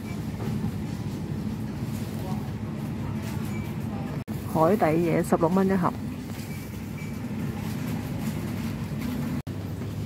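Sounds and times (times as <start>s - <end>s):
supermarket background hum: 0.0s - 10.0s.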